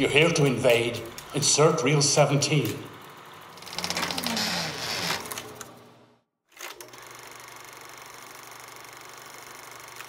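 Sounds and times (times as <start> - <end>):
film projector clatter: 6.6 - 10.0.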